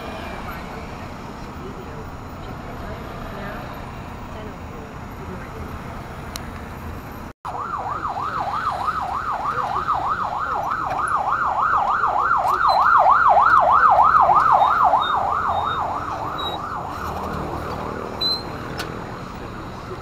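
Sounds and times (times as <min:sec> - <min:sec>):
traffic road noise: 0:00.0 - 0:20.0
electronic siren yelping: 0:07.5 - 0:17.2.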